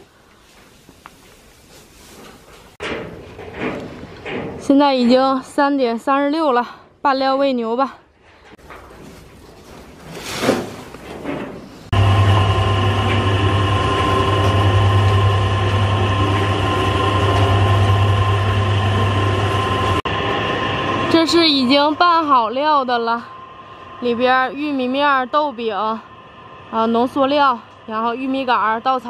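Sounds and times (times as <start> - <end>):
electric feed mixer humming: 11.9 - 29.0
mixer whining tones: 11.9 - 29.0.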